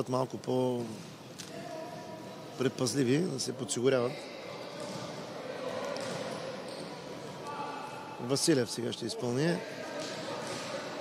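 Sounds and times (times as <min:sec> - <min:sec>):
ball bouncing on court floor: 0:06.0 - 0:06.8.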